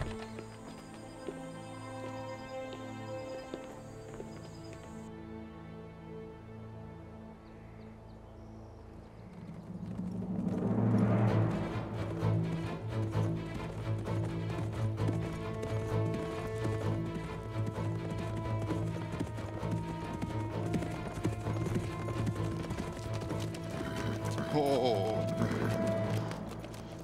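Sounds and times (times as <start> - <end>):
horse hoofbeats: 0.0 - 5.1, 9.2 - 27.0
low music score: 0.0 - 9.2, 10.0 - 27.0
horse whinnying: 17.9 - 26.4.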